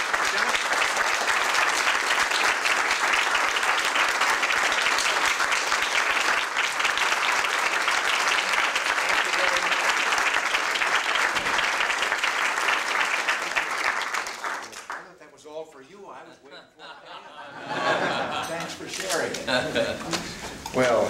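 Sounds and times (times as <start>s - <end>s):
crowd applauding: 0.0s - 15.4s.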